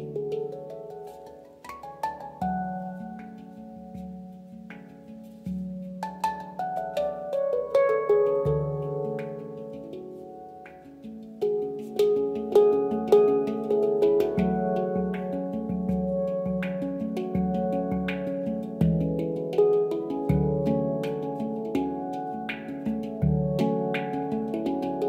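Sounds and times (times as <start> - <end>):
handpan melody: 0.0 - 25.0.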